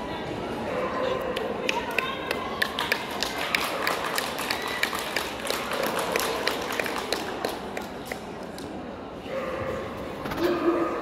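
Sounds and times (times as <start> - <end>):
murmur of a hall: 0.0 - 11.0.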